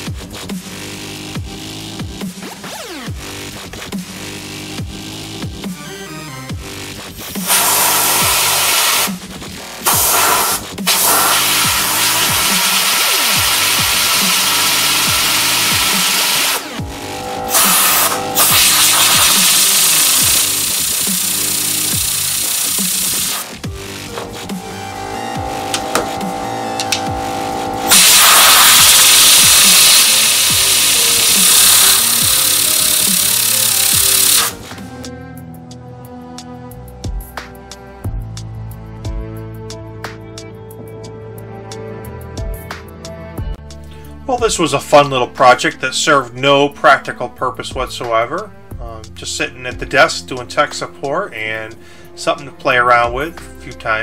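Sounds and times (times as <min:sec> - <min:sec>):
electronic music: 0:02.4 - 0:36.5
air blow gun blasts: 0:07.4 - 0:09.2, 0:09.8 - 0:34.8.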